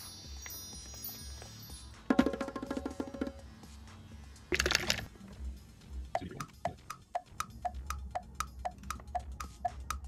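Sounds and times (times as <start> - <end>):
soft chime-like background music: 0.0 - 3.1.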